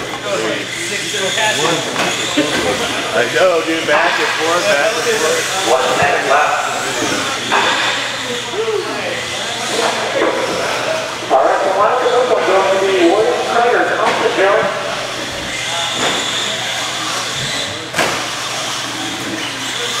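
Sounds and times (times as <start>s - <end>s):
people talking indistinctly: 0.0s - 18.0s.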